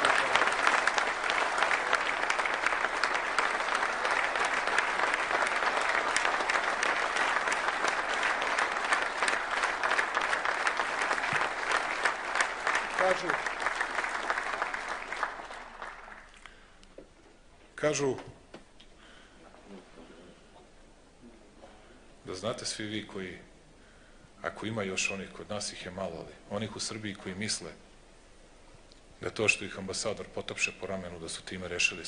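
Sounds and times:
audience applauding: 0.0s - 16.6s.

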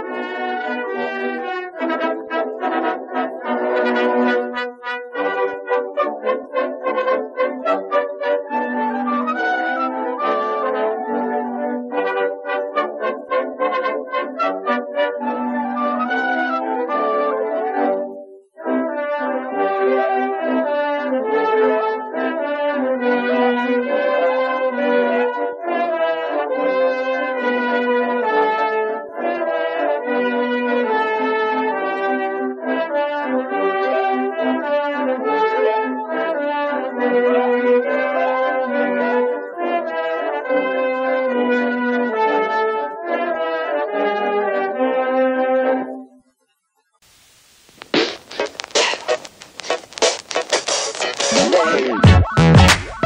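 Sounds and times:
instrumental background music: 47.9s - 53.0s.

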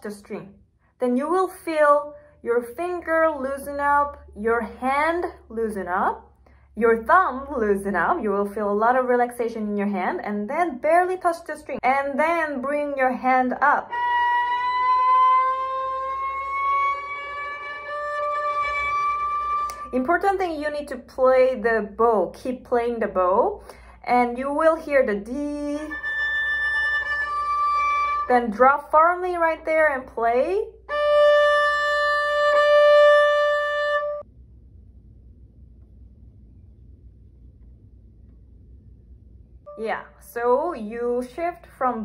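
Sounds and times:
violin note gliding upward: 13.9s - 19.9s, 25.9s - 28.3s, 30.9s - 34.2s.

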